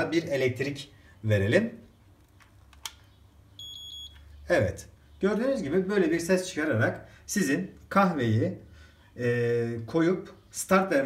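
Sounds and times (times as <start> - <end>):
sharp click: 2.4 - 3.1
coffee machine beep: 3.6 - 4.3.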